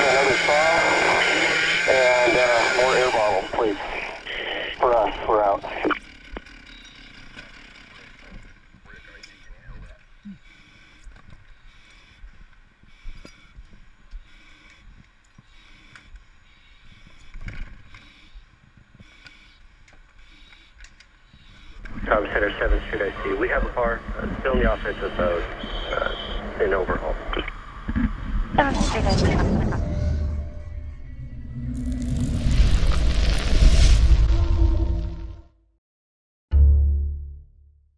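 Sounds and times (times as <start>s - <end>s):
rushing fiery swell of noise: 0.0s - 4.4s, 31.0s - 35.4s
deep rumbling boom: 28.2s - 35.5s
low held tone: 28.8s - 32.5s.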